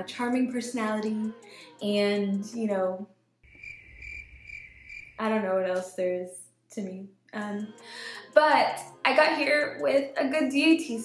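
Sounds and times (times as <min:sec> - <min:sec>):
crickets chirping: 0:03.5 - 0:05.2.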